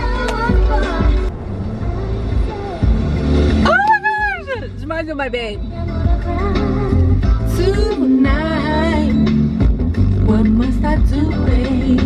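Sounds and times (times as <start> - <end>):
song on car radio: 0.0 - 12.0.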